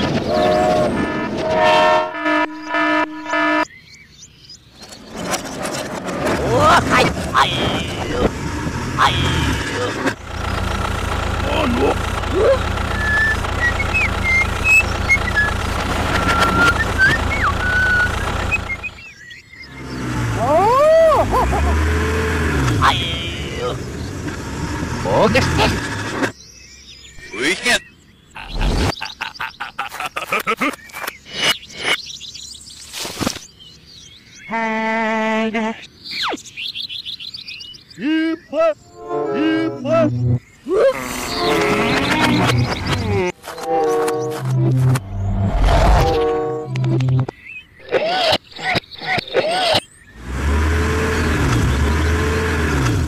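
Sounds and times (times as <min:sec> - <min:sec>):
toy tractor engine hum: 0:09.0 - 0:19.0
sliding whistle-like tones: 0:12.9 - 0:19.0.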